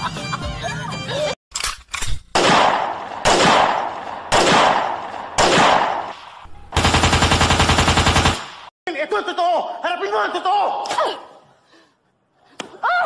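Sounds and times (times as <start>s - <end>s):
echoing gunshots: 2.3s - 8.7s
machine-gun burst: 6.8s - 8.7s.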